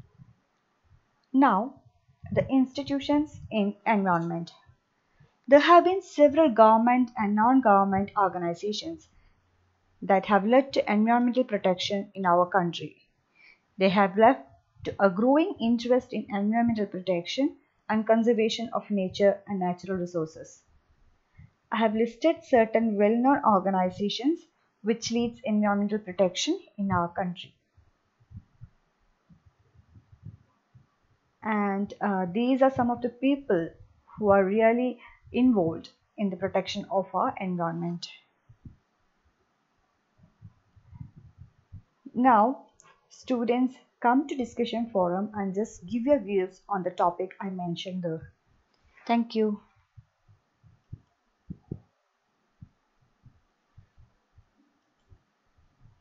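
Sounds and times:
faint steady hiss: 0.0 - 17.9, 37.8 - 46.7, 48.2 - 56.0
faint low thumps: 1.8 - 3.6, 28.2 - 30.9, 40.2 - 42.0, 49.8 - 51.9.

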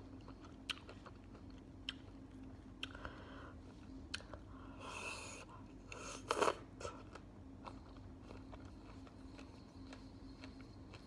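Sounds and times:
soft chewing clicks: 0.0 - 4.5, 5.7 - 11.0.

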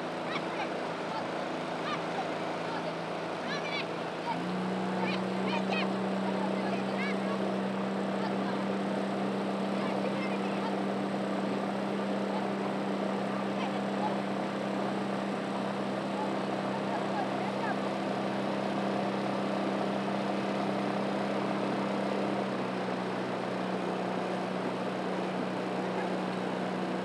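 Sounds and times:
motorboat engine droning: 0.0 - 27.0.

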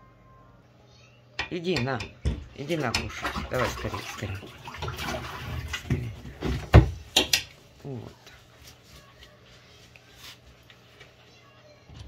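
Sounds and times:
water splashing: 2.6 - 6.2.

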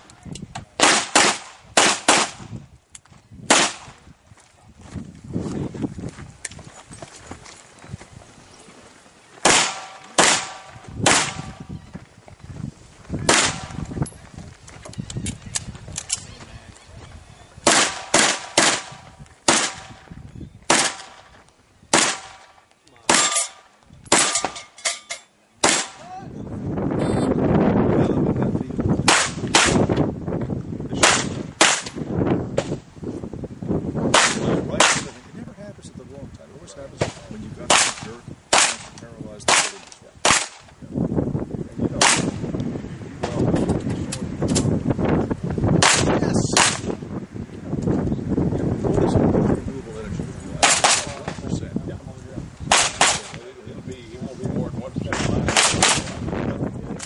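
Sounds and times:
handgun shots: 0.8 - 2.4, 3.5 - 4.0, 9.4 - 11.6, 13.3 - 13.8, 17.6 - 20.0, 20.7 - 21.2, 21.9 - 22.5, 23.1 - 24.6, 25.6 - 26.0, 29.1 - 29.9, 31.0 - 32.0, 34.1 - 35.1, 37.7 - 40.6, 42.0 - 42.4, 45.8 - 46.9, 50.6 - 51.2, 52.7 - 53.4, 55.2 - 56.2.

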